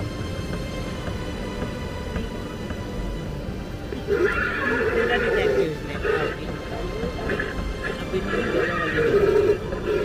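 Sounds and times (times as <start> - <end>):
horse whinnying: 4.1 - 5.4.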